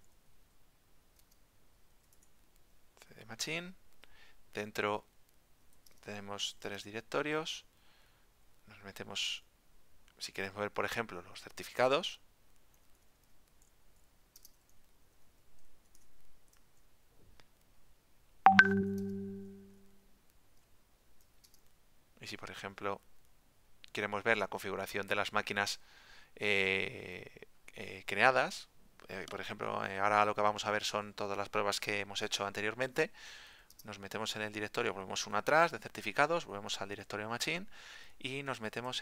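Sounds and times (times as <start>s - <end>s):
keyboard keystroke clicks: 18.5s - 19.6s
ringing ding: 18.5s - 19.8s.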